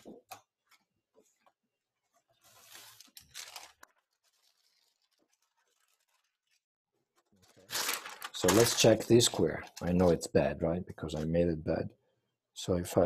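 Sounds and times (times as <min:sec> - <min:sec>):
tracing paper rustling: 0:00.6 - 0:10.2.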